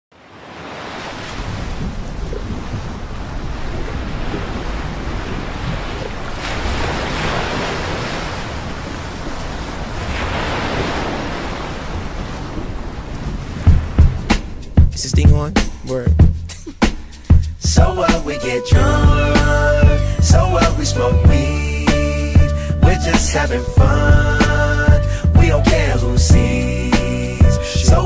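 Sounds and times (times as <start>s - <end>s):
sea waves rushing: 0.1s - 28.0s
wind on microphone: 1.1s - 14.9s.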